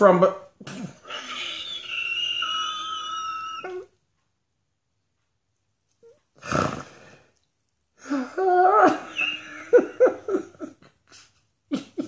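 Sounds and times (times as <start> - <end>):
high squeaky wheeze: 0.7 - 4.0, 8.8 - 9.7.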